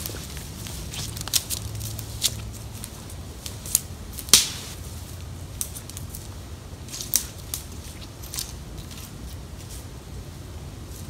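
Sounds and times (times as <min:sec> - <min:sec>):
footsteps on dry pine needles: 0:00.0 - 0:10.0.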